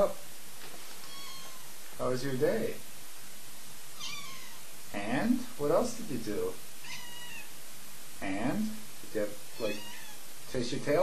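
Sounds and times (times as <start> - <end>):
cat meowing softly: 1.0 - 1.8, 4.0 - 4.7, 6.8 - 7.6, 9.5 - 10.3.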